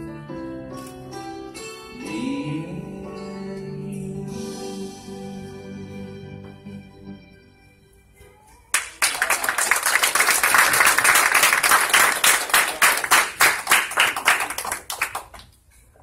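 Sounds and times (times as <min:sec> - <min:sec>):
crowd applauding: 0:08.7 - 0:15.6.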